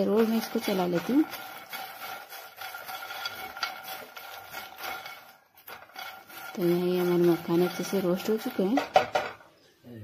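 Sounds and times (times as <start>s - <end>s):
spatula scraping in a pan: 0.0s - 9.6s.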